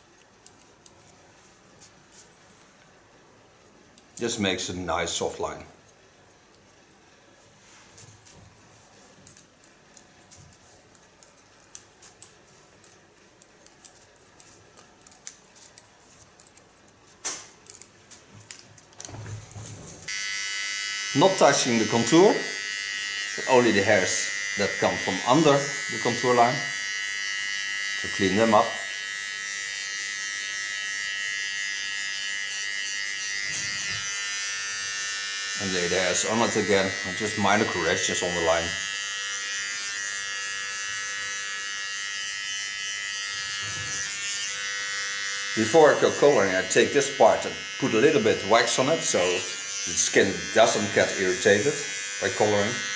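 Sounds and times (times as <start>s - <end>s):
scissors snipping hair: 0.0s - 1.2s, 9.1s - 19.6s
small motor buzzing: 19.5s - 52.9s.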